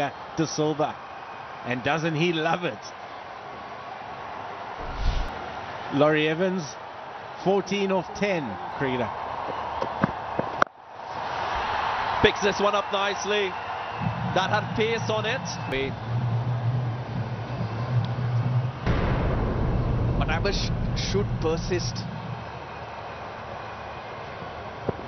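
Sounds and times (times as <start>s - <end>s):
broadcast background noise: 11.7s - 18.8s, 20.2s - 25.0s.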